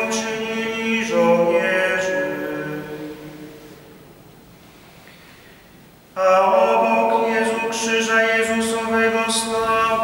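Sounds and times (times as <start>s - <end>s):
unaccompanied choir holding a chord: 1.1s - 3.8s.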